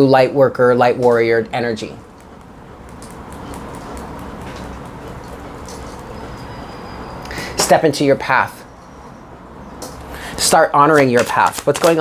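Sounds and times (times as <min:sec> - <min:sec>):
low hum: 0:01.8 - 0:07.5.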